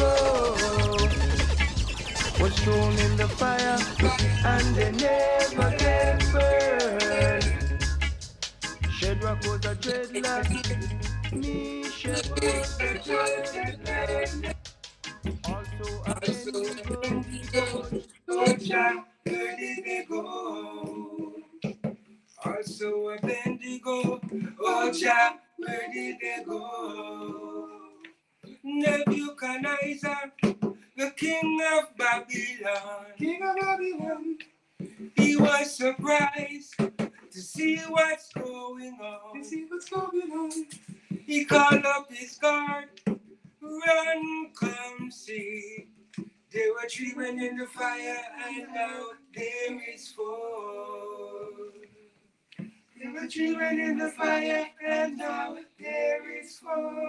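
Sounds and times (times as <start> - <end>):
men singing reggae unaccompanied: 0.0 - 52.1, 53.0 - 57.0.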